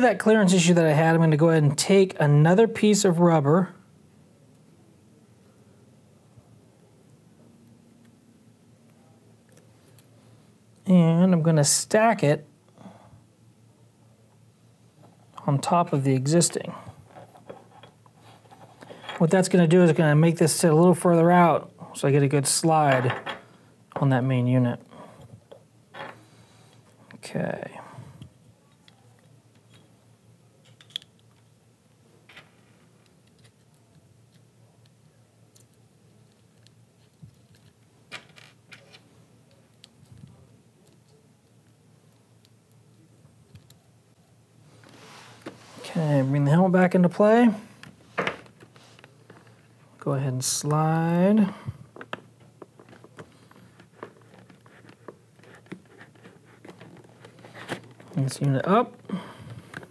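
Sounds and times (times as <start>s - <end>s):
low room hum: 0.0s - 59.9s
faint handling noise: 14.3s - 20.1s, 25.2s - 59.9s.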